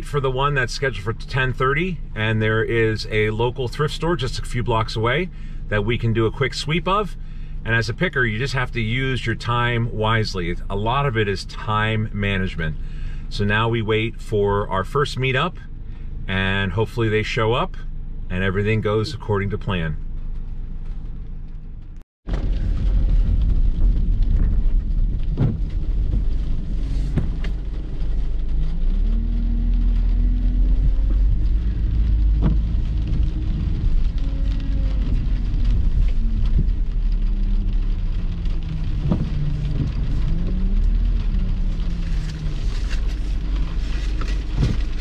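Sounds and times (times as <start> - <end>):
road rumble: 0.0 - 45.0
vehicle engine rising and falling: 0.0 - 45.0.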